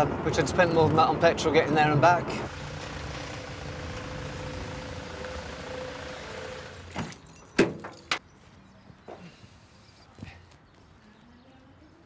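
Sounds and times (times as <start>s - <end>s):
van engine running: 2.5s - 7.2s.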